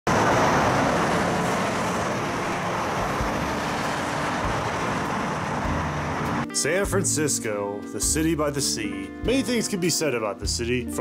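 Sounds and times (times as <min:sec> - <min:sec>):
train rushing rumble: 0:00.1 - 0:06.5.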